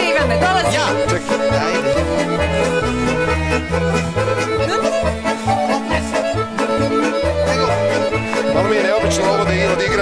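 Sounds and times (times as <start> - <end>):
accordion folk dance music: 0.0 - 10.0.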